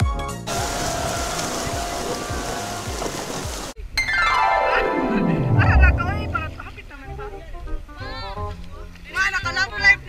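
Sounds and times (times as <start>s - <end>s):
whitewater rushing and splashing: 0.5s - 3.8s.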